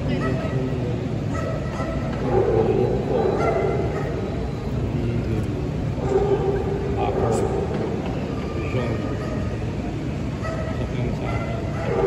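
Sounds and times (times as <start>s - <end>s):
crowd noise in indoor hall: 0.0s - 12.0s
dog barking: 0.1s - 0.6s, 1.3s - 4.3s, 6.0s - 7.6s, 9.1s - 9.6s, 10.4s - 12.0s.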